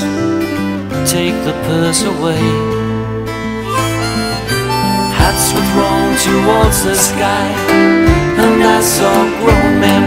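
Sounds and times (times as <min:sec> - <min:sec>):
acoustic guitar: 0:00.0 - 0:10.0
bass: 0:00.0 - 0:10.0
harmonica playing held notes: 0:03.6 - 0:07.6.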